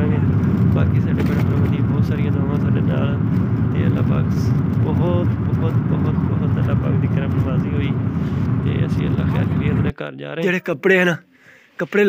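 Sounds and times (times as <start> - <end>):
people talking: 0.0 - 8.0, 8.6 - 11.2, 11.8 - 12.0
car road and engine rumble: 0.0 - 10.0.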